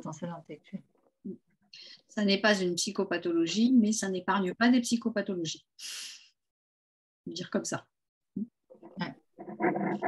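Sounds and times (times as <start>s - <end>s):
dog vocalizing: 9.4s - 10.0s.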